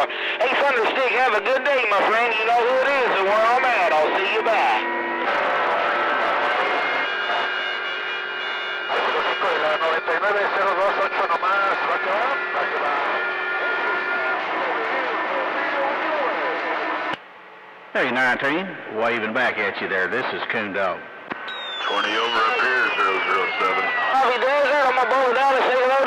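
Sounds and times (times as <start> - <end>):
garbled radio voices: 0.0 - 17.1, 18.0 - 26.0
radio static: 0.0 - 17.1, 19.8 - 26.0
steady whistling tones: 21.4 - 25.5.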